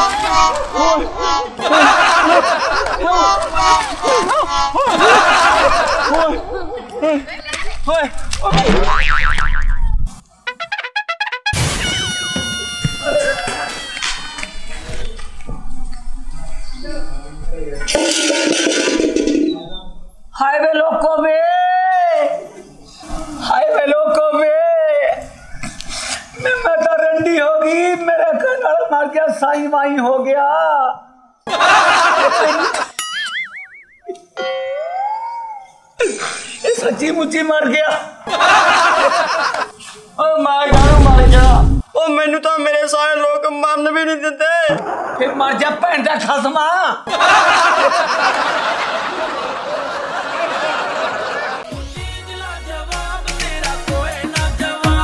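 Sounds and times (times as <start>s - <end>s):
cartoon boing sound effect: 8.5s - 10.1s.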